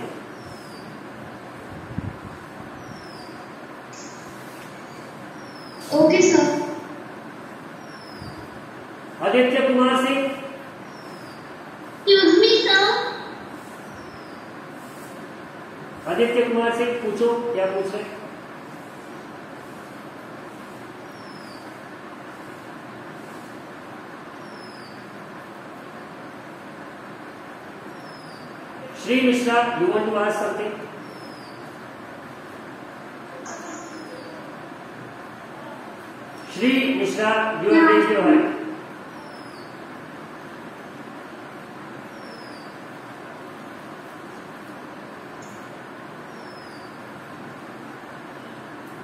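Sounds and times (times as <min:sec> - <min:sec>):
steady background noise: 0:00.0 - 0:49.0.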